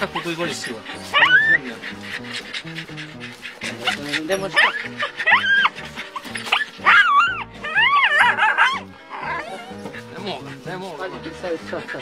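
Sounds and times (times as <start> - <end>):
dog whining: 0.0 - 10.7
background music with held notes: 0.0 - 12.0.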